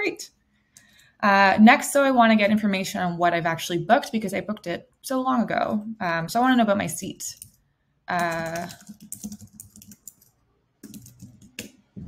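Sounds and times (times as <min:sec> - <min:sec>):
typing on a computer keyboard: 0:07.4 - 0:07.6, 0:08.2 - 0:11.8.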